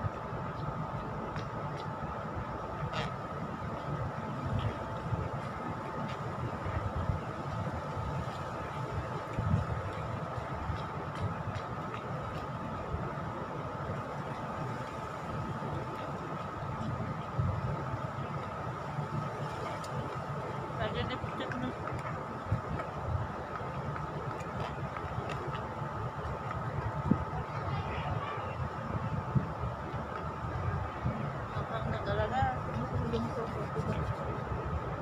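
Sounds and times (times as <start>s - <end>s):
faint steady whine: 0.0s - 35.0s
low fluctuating city rumble: 0.0s - 35.0s.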